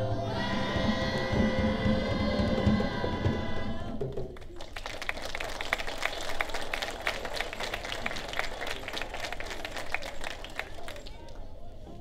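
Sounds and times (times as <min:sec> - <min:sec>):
audience applauding: 0:04.4 - 0:11.5.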